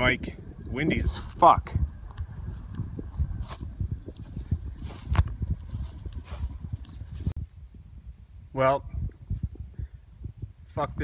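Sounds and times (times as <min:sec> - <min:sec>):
wind buffeting microphone: 0:00.0 - 0:11.0
footsteps on dirt track: 0:01.0 - 0:07.4.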